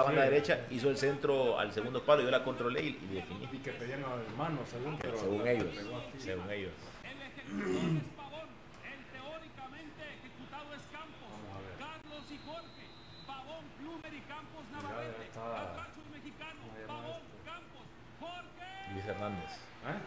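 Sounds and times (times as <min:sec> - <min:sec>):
man talking: 0:00.0 - 0:20.0.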